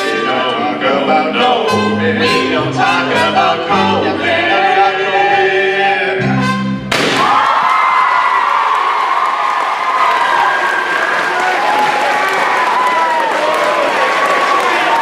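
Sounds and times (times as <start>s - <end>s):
people whooping: 7.2s - 15.0s
audience applauding: 7.3s - 15.0s.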